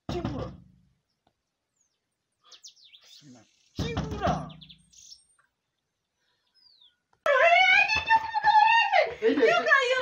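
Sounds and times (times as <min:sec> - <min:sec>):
faint bird chirp: 0:01.0 - 0:07.2.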